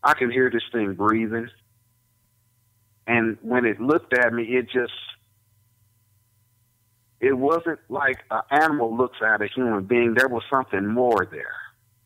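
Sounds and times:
faint steady hum: 0.0 - 12.0
man's voice: 3.1 - 5.1, 7.2 - 11.7.

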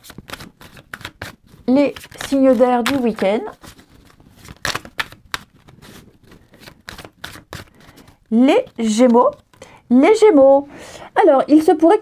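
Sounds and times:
cards being shuffled by hand: 0.0 - 9.8.

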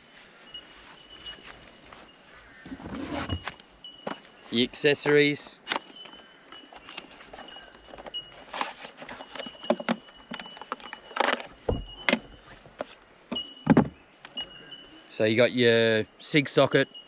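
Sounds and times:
knocks scrapes and rustles: 2.6 - 4.3, 6.7 - 13.0
packaging and cable handling: 5.0 - 11.6
faint high steady tone: 13.2 - 17.0.

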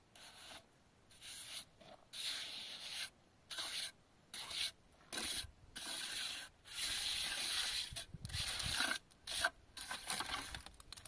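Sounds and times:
trowel scraping wet plaster: 0.2 - 10.6.

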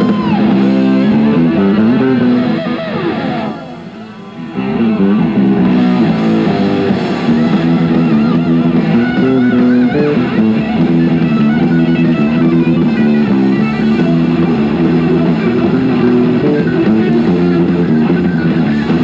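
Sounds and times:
heavy metal band playing: 0.0 - 19.0.

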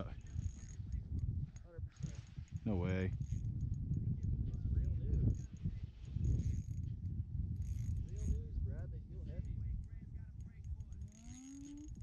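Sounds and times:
fishing reel clicking: 10.4 - 12.0.

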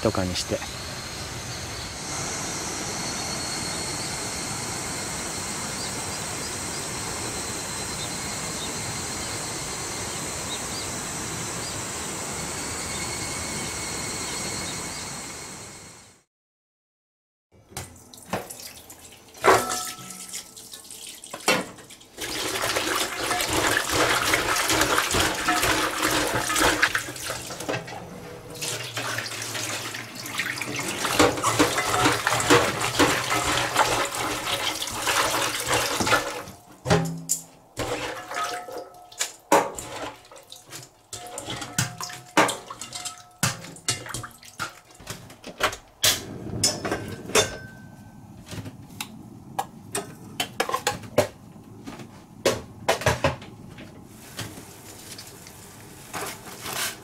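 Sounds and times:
tap water running into metal bowl: 17.8 - 36.6, 37.8 - 45.0.

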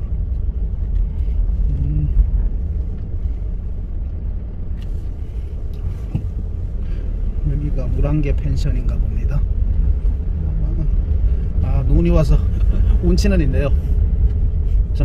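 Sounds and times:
van engine rumble: 0.0 - 15.0.

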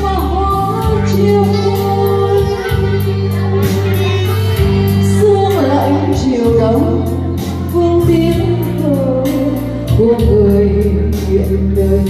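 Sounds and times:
backing music with bass: 0.0 - 12.0
woman singing into microphone: 0.0 - 12.0.

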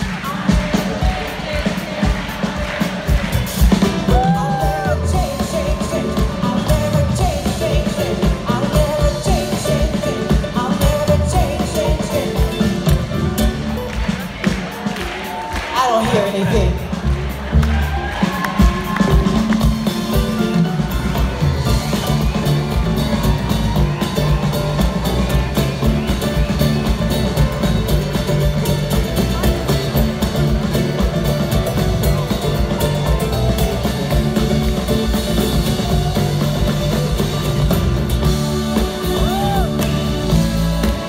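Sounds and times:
live rock band playing loudly: 0.0 - 41.0.

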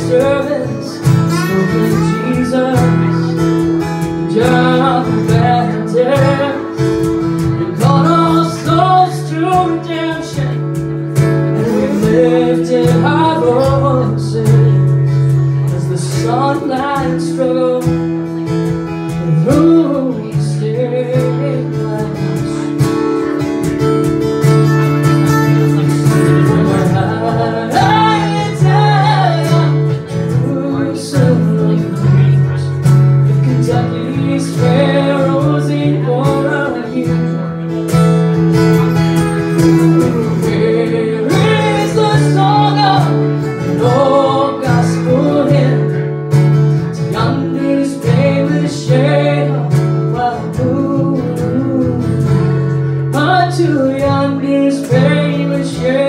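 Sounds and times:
acoustic guitar strumming: 0.0 - 56.0
lap steel guitar sliding melody: 0.2 - 7.9, 22.4 - 30.8.

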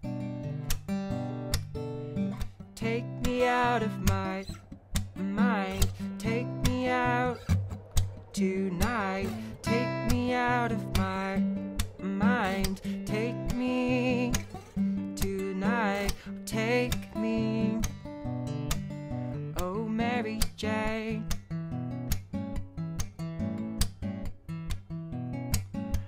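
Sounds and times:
acoustic guitar playing: 0.0 - 26.0
wordless singing: 2.8 - 18.0.

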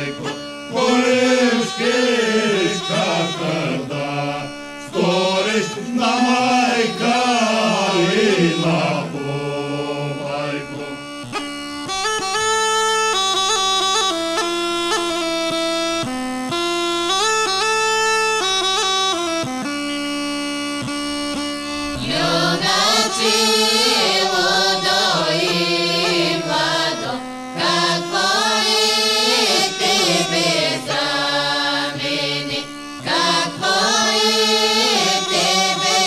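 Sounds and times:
group singing: 0.0 - 11.0, 21.8 - 36.0
bagpipe melody over drone: 0.0 - 36.0.

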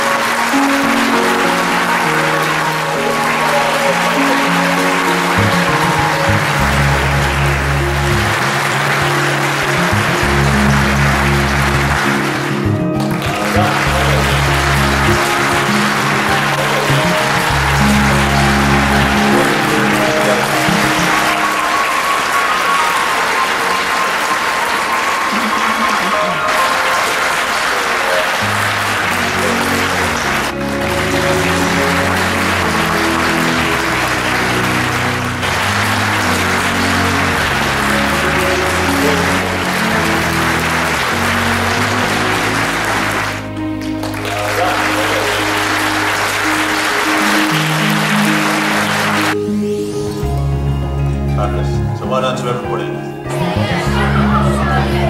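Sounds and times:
audience applauding: 0.0 - 49.5, 53.3 - 55.0
background music: 0.0 - 55.0.

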